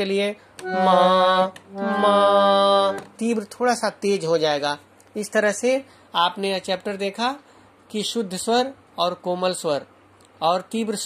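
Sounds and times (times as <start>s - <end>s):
harmonium held notes: 0.6s - 3.0s.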